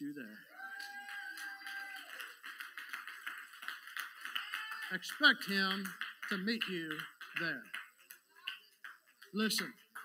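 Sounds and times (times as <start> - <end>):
congregation clapping: 0.6 - 10.0.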